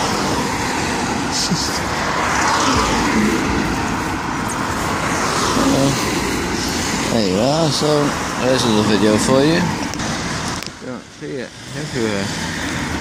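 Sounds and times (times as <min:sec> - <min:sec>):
car passing by: 0:00.0 - 0:10.6
road traffic noise: 0:00.0 - 0:13.0.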